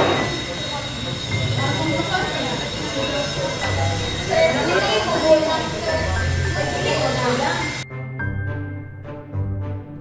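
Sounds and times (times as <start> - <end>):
high-pitched whine: 0.0 - 7.8
students chattering: 0.0 - 7.8.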